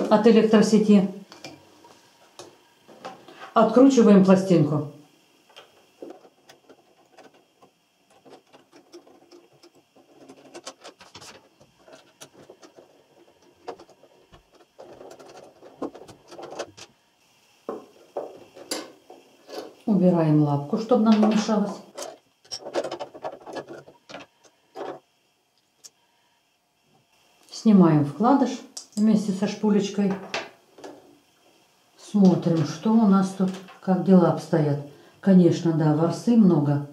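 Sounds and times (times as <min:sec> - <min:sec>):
woman speaking: 0:00.0 - 0:01.3, 0:03.4 - 0:05.0, 0:19.8 - 0:21.9, 0:27.5 - 0:30.3, 0:32.0 - 0:36.9
metal and plastic scraping: 0:05.6 - 0:17.0, 0:21.2 - 0:25.0.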